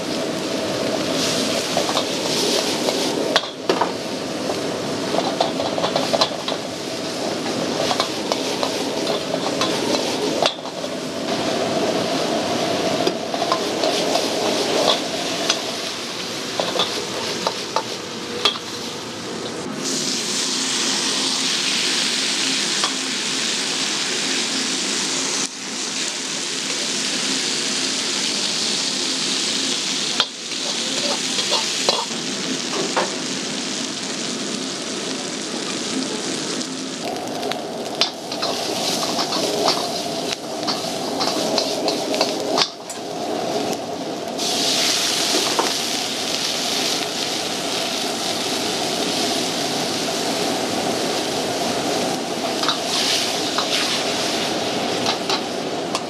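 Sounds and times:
food sizzling in a wok: 0.0s - 56.0s.

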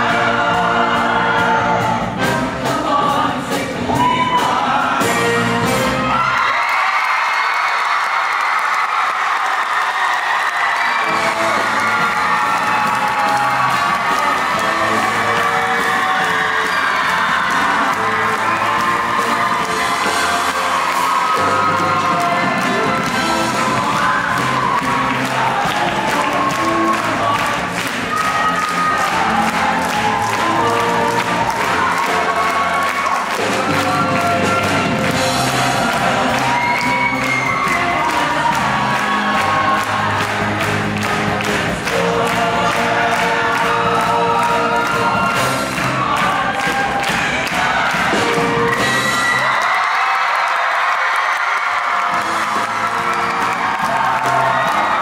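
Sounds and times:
choir singing: 0.0s - 6.2s, 10.8s - 49.5s
live band with saxophones: 0.0s - 6.5s, 10.5s - 49.8s, 51.6s - 55.0s
audience cheering and whooping: 3.9s - 5.0s, 5.8s - 55.0s.

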